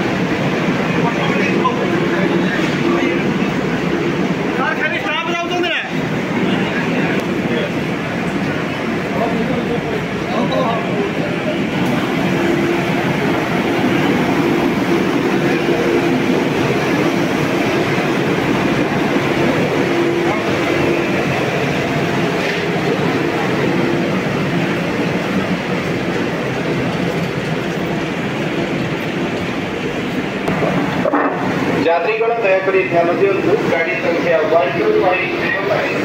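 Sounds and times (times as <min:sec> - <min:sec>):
electric train equipment humming: 0:00.0 - 0:36.0.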